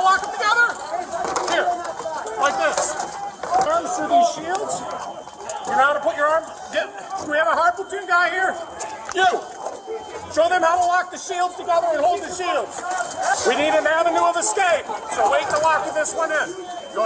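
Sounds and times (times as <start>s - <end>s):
men shouting: 8.6s - 17.0s.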